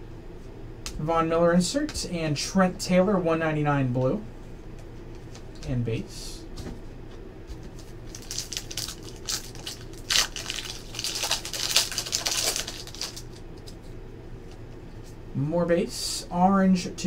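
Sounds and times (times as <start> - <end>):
foil wrapper tearing and crinkling: 8.0 - 13.4.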